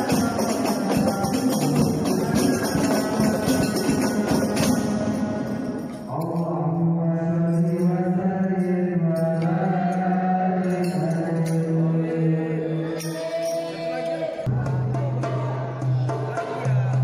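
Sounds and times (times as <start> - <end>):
man singing through microphone: 0.0 - 14.7.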